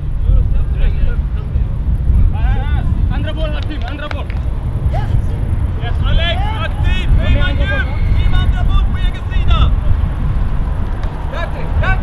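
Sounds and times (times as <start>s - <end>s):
distant raised voices: 0.0s - 12.0s
wind buffeting microphone: 0.0s - 12.0s.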